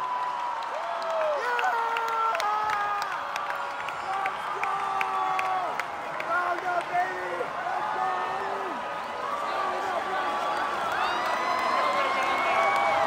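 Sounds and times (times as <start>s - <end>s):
crowd cheering and yelling: 0.0s - 13.0s
people clapping: 0.0s - 13.0s.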